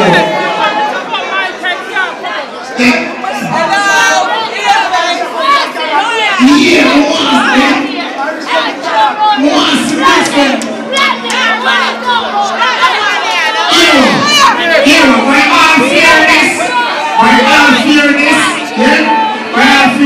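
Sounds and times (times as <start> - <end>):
crowd shouting and cheering: 0.0 - 20.0.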